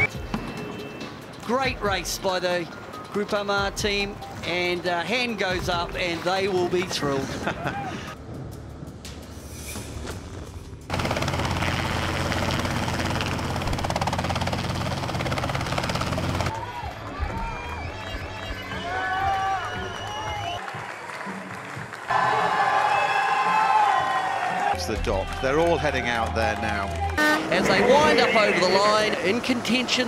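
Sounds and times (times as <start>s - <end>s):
background music: 0.0s - 10.9s, 16.5s - 30.0s
people cheering and whooping: 7.4s - 8.2s, 16.5s - 28.9s.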